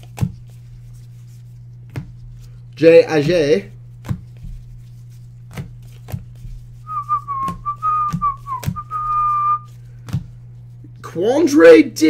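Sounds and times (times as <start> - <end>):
person whistling a tune: 6.9 - 9.7.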